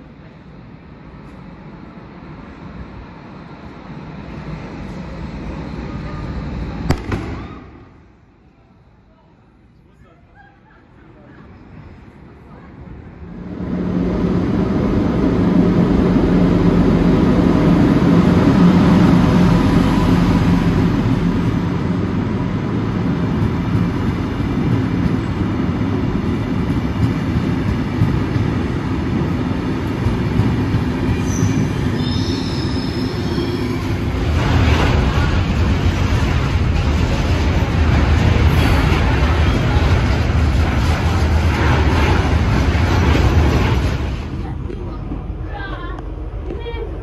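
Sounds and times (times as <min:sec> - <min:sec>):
freight train passing: 0:00.0 - 0:47.0
passenger train wheels rumbling: 0:00.0 - 0:47.0
train wheel squeal: 0:31.0 - 0:34.1.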